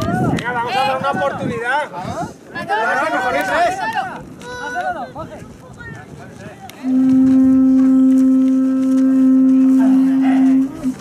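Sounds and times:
horn long steady note: 0:06.8 - 0:11.0.

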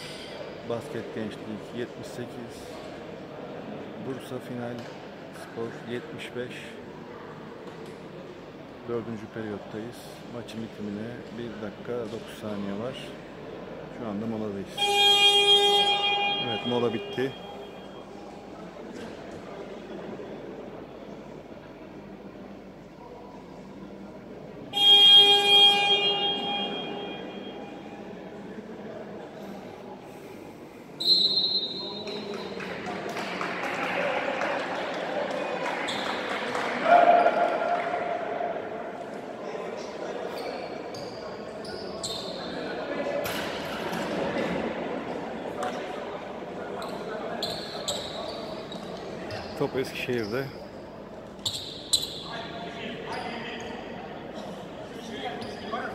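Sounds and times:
sports hall buzzer: 0:14.7 - 0:18.2, 0:24.7 - 0:28.1
shoe squeaks on hardwood court: 0:40.3 - 0:42.6, 0:46.8 - 0:49.6, 0:51.4 - 0:52.4, 0:53.1 - 0:53.7.

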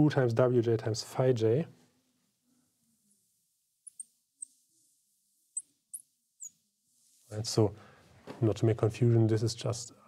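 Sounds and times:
marker squeaking on glass: 0:03.8 - 0:04.8, 0:05.5 - 0:06.6.

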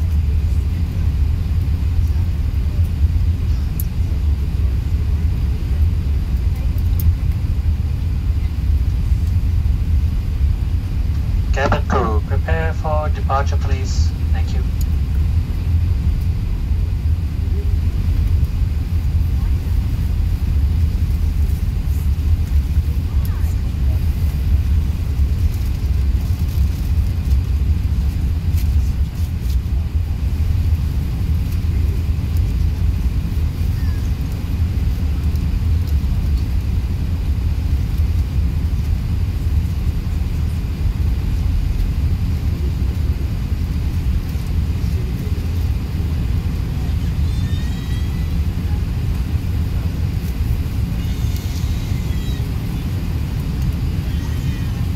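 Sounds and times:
aircraft cabin rumble: 0:00.0 - 0:54.9.

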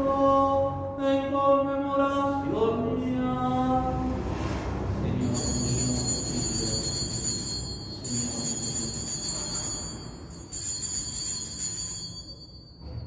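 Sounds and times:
small bells jingling: 0:05.2 - 0:12.8.

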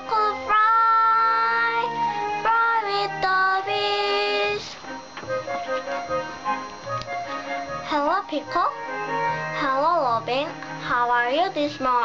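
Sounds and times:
child singing: 0:00.0 - 0:04.8, 0:09.6 - 0:12.0
backing track music: 0:00.0 - 0:12.0.

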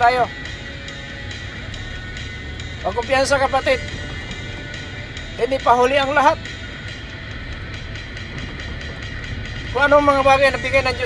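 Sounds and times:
car rumble from inside cabin: 0:00.0 - 0:11.0
faint background music: 0:00.0 - 0:11.0.

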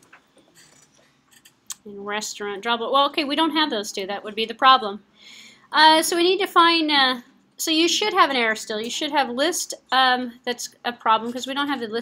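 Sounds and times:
person speaking: 0:05.8 - 0:12.0.

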